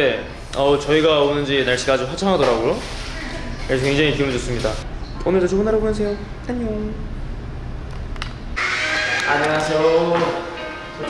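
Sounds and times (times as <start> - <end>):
background music: 8.6 - 11.0.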